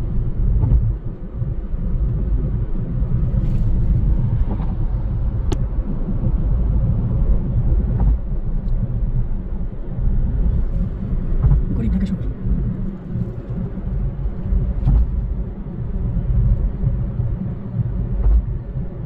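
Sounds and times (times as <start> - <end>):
car road rumble: 0.0 - 19.0.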